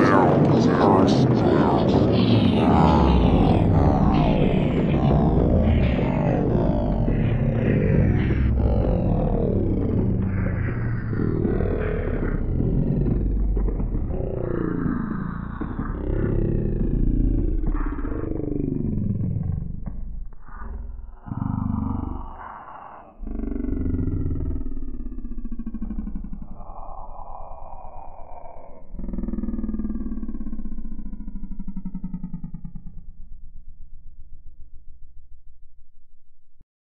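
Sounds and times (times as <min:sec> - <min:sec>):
deep distorted voice: 0:00.0 - 0:33.2.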